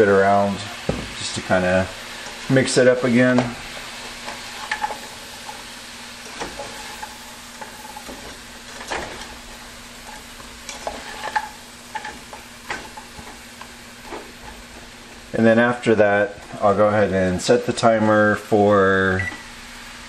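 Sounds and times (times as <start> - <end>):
broccoli sizzling in frying pan: 0.0 - 20.0
spatula scraping and knocking pan: 2.1 - 15.3.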